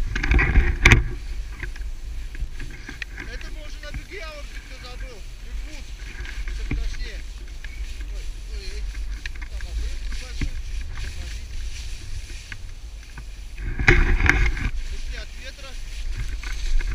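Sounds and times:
wind rumbling on microphone: 0:00.0 - 0:16.9
snowboard sliding through powder: 0:01.0 - 0:16.9.

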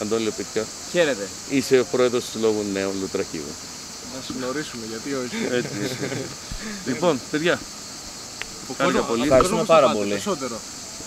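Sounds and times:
high-pitched insect drone: 0:00.0 - 0:11.0
voices talking: 0:00.0 - 0:11.0.

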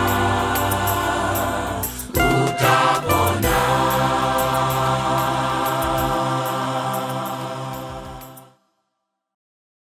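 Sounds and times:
backing track with ticking percussion: 0:00.0 - 0:08.5
male choir holding a chord: 0:00.0 - 0:08.6.

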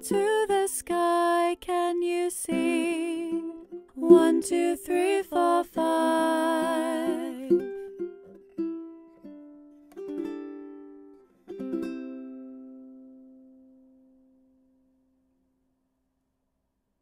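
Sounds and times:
plucked string instrument: 0:00.0 - 0:15.2.

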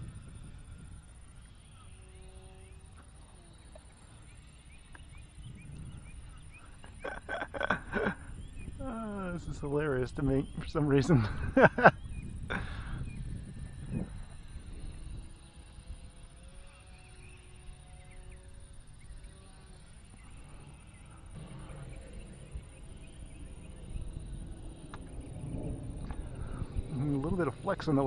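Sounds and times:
distant model plane motor hum: 0:00.0 - 0:28.0
wind rumbling on microphone: 0:00.0 - 0:28.0.

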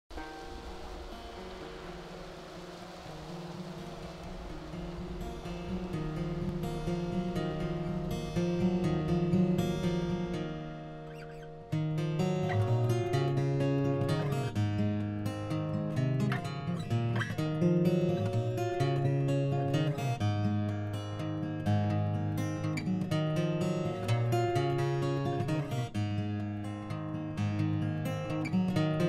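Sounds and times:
fingerpicked acoustic guitar: 0:00.1 - 0:29.0.

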